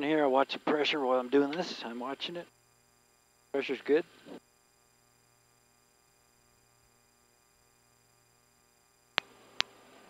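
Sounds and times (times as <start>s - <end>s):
faint electrical hum: 0.0s - 10.0s
line hiss: 0.2s - 4.8s.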